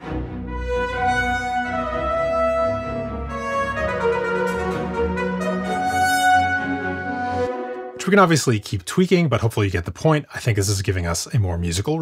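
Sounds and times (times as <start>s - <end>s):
trumpet ensemble playing sustained notes: 0.0s - 8.4s
brass accompaniment: 0.0s - 8.6s.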